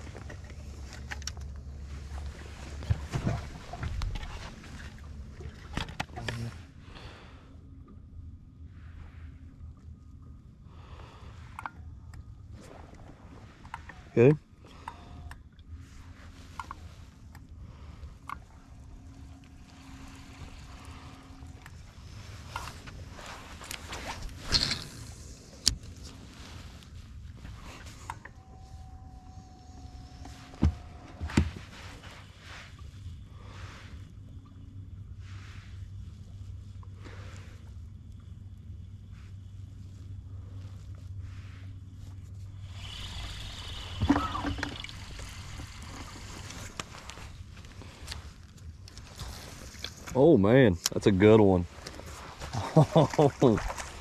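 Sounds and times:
low steady hum: 0.0s - 54.0s.

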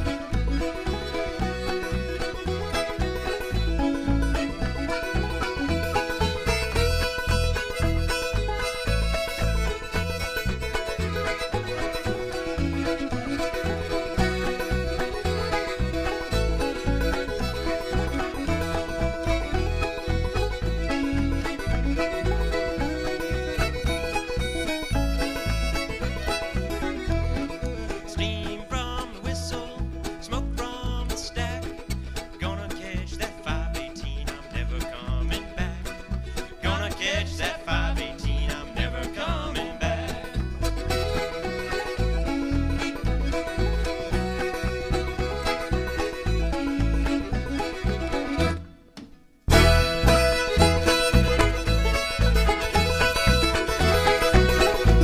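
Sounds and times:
button accordion: 0.0s - 28.1s, 40.1s - 55.0s
banjo: 0.0s - 55.0s
fiddle: 0.0s - 55.0s
upright bass: 0.0s - 55.0s.

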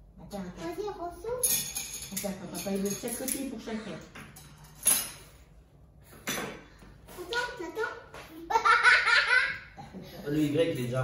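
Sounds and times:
laughter and giggling: 8.4s - 10.2s.

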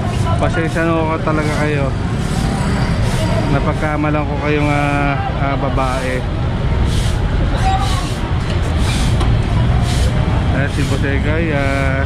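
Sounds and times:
faint voices: 0.0s - 12.0s
passing traffic: 0.0s - 12.0s.

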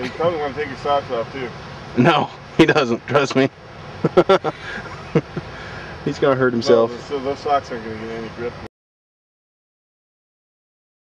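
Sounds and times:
outdoor background noise: 0.0s - 8.7s
man laughing: 4.0s - 5.7s.

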